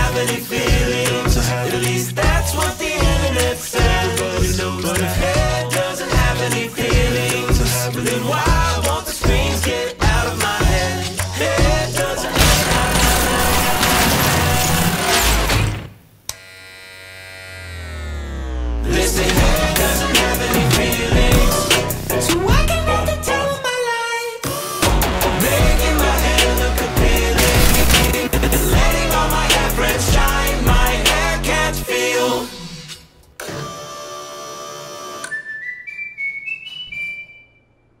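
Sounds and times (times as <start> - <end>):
electric buzzing drone: 16.3 - 18.8
deep hum: 25.1 - 31.8
high whistle-like notes: 35.2 - 37.8.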